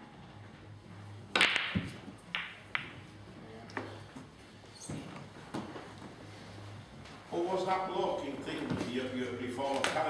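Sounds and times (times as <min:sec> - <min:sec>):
pool balls knocking and clicking: 0:01.2 - 0:03.9
cue ball cracking into pool balls: 0:01.3 - 0:03.0.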